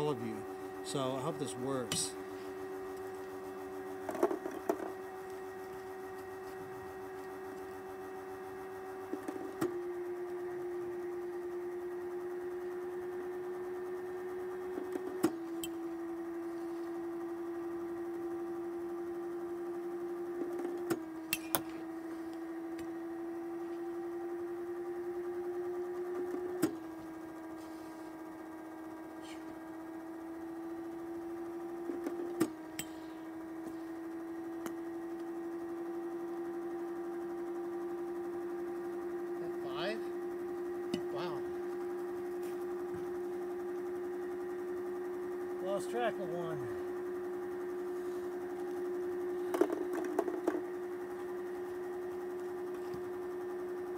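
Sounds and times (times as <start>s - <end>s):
pitching machine motor humming: 0.0s - 53.9s.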